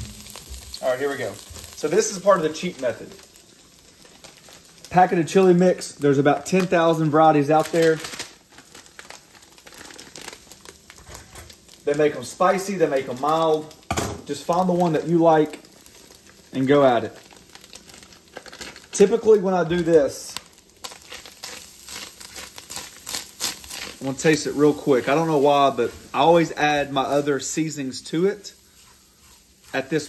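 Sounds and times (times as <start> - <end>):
paper packet tearing and crinkling: 4.0 - 13.8, 14.7 - 25.7
spatula scraping a pot: 28.7 - 30.0.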